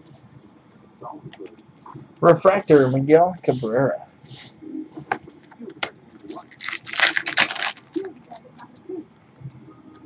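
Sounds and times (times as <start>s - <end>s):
faint low murmur: 0.0s - 6.5s.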